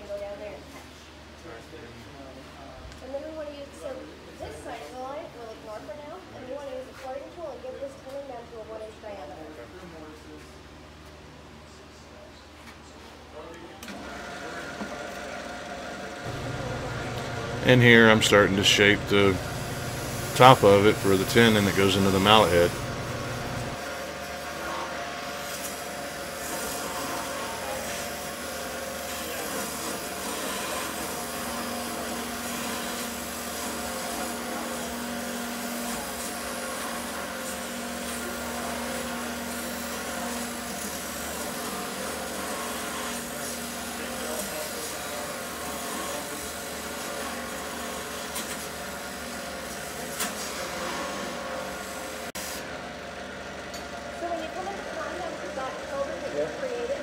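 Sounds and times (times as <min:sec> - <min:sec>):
lathe humming: 0:14.0 - 0:34.7
turning tool shaving wood: 0:15.9 - 0:52.3.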